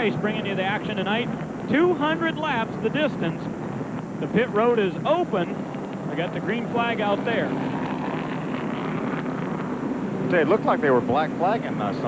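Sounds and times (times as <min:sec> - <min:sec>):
car engines running steadily: 0:00.0 - 0:12.0.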